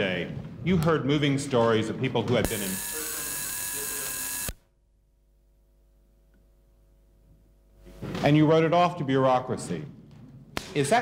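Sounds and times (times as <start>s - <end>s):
electrical hiss and buzz: 2.5s - 4.6s
high thin whine: 2.5s - 4.6s.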